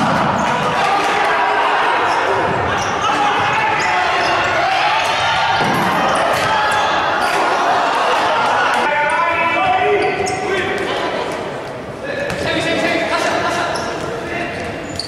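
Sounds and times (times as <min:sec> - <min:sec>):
players shouting: 0:00.0 - 0:11.3.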